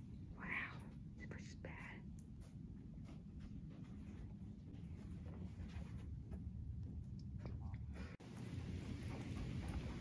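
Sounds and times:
faint whispering: 0:00.3 - 0:02.1.

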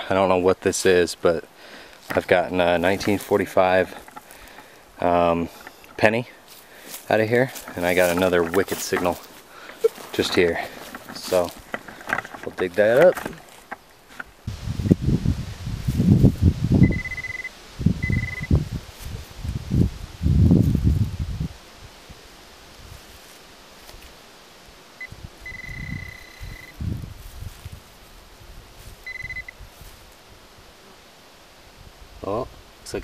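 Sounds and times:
knife digging and scraping soil: 0:02.1 - 0:14.4
high-pitched pinpointer beeps: 0:16.8 - 0:18.5, 0:25.0 - 0:26.7, 0:29.1 - 0:29.6.

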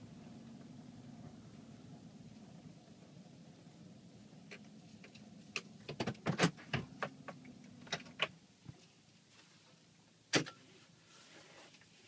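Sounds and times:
car interior hum: 0:00.0 - 0:10.4.

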